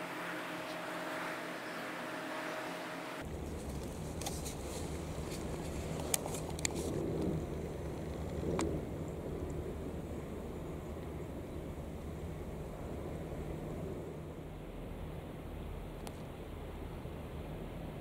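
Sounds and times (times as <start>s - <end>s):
boat engine rumble: 0.0s - 18.0s.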